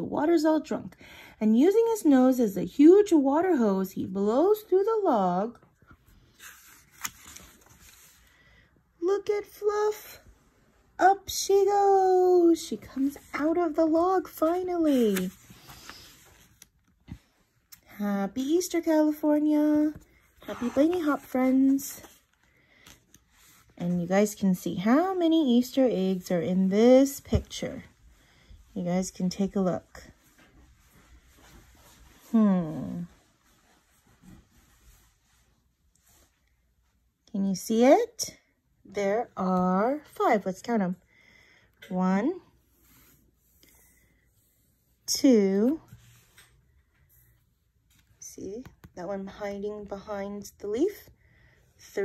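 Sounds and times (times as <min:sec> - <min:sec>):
book page rustling: 0:05.8 - 0:08.4, 0:12.8 - 0:17.4, 0:19.6 - 0:24.0.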